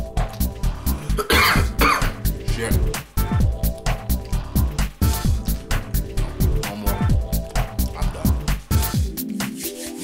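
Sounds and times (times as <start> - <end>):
electronic music with steady beat: 0.0 - 10.0
man coughing: 1.0 - 2.8.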